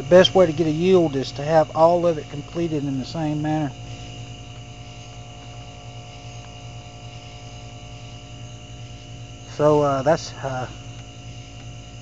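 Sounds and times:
low electrical hum: 0.0 - 12.0
faint ticks: 3.9 - 7.6, 10.8 - 11.8.

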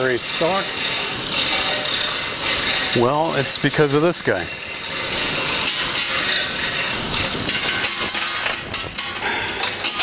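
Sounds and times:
garage door chain rattling: 0.0 - 10.0.

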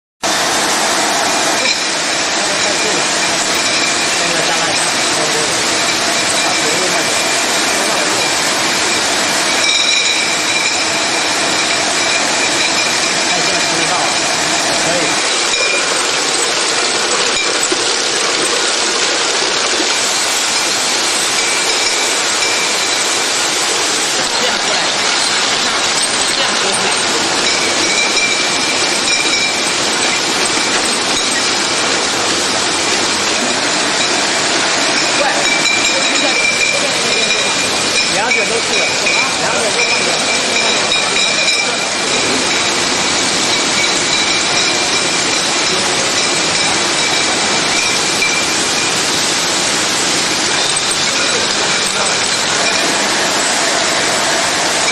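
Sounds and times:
conveyor mechanical clatter: 0.2 - 54.9
glass bottles clinking: 0.3 - 54.9.

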